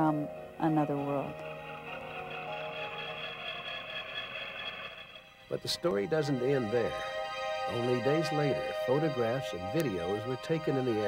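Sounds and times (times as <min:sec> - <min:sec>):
sustained tone background music: 0:00.0 - 0:11.0.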